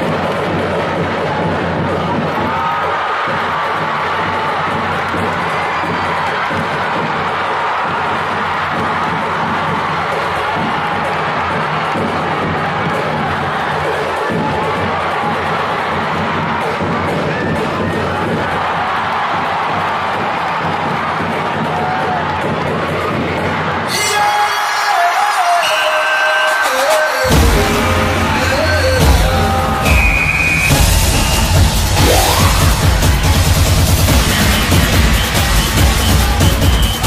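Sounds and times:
crowd cheering and shouting: 0:00.0 - 0:37.0.

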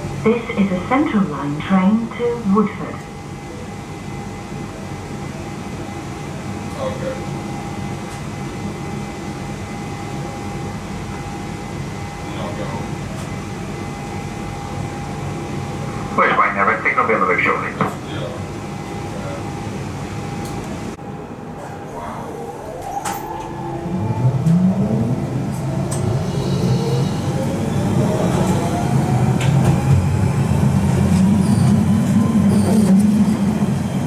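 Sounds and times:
train equipment humming: 0:00.0 - 0:34.0.

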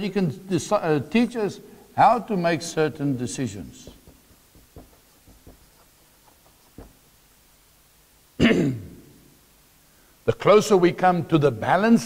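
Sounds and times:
man clearing his throat: 0:08.4 - 0:09.0.

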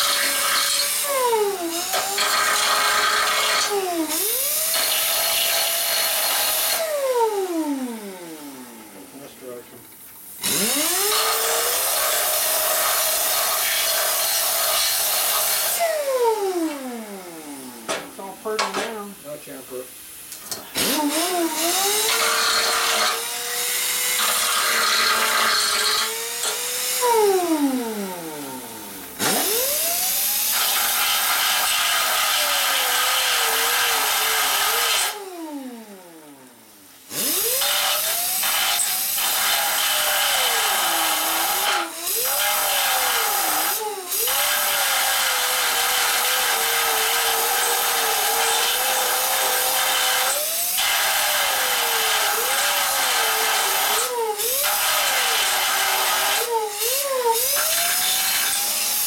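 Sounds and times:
angle grinder cutting steel: 0:00.0 - 0:07.8, 0:10.3 - 0:19.5, 0:20.4 - 0:35.3, 0:37.1 - 0:59.0.

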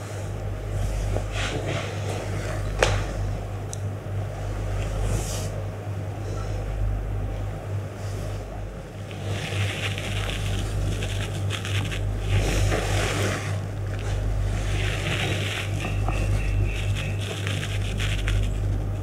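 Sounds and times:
steady low hum: 0:00.0 - 0:19.0
cloth rustling and scraping: 0:09.0 - 0:19.0.

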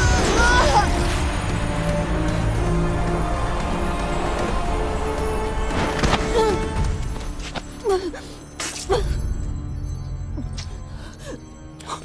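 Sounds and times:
dramatic orchestral music: 0:00.0 - 0:12.0.

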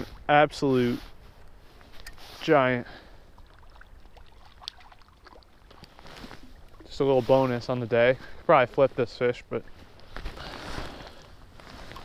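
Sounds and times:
faint river water: 0:00.0 - 0:12.0
light water splashing: 0:01.3 - 0:07.4
small clicks and rustles: 0:04.6 - 0:06.5.

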